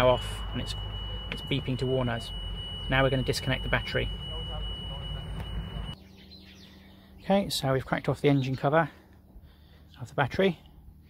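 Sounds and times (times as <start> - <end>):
dashboard warning beep: 0.0 - 6.0.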